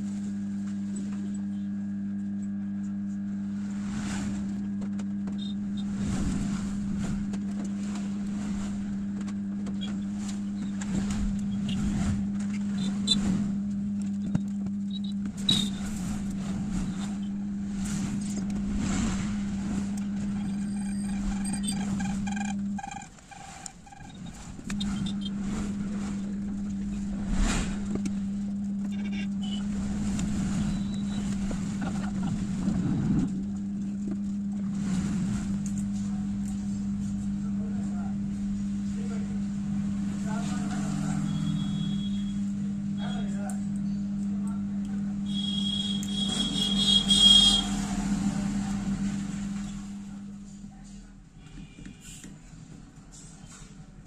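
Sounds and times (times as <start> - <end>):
low motor hum: 0.0 - 54.0
shrill high squeal: 20.2 - 25.4.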